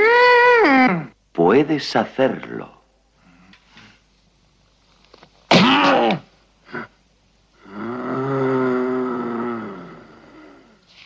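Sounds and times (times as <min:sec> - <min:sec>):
man humming a moan: 0:07.6 - 0:10.7.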